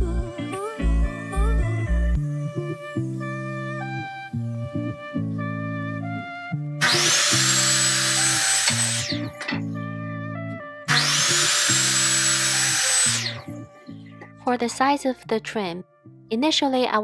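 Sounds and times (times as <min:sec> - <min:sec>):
music with plucked notes: 0:00.0 - 0:06.9
miter saw cutting wood: 0:06.8 - 0:09.5, 0:10.9 - 0:13.5.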